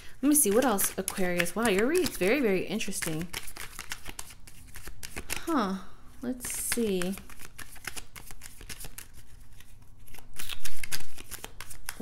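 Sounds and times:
cards being shuffled: 0:00.2 - 0:05.6, 0:06.4 - 0:12.0.

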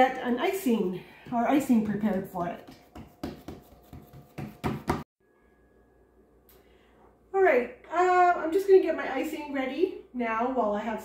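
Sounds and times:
hands patting dough in metal pan: 0:00.8 - 0:05.1.

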